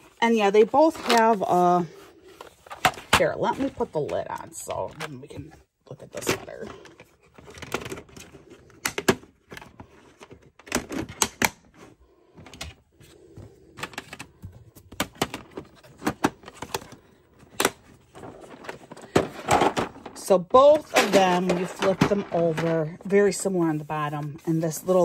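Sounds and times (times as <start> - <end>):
plastic trays clicking and clacking: 13.7 - 23.4.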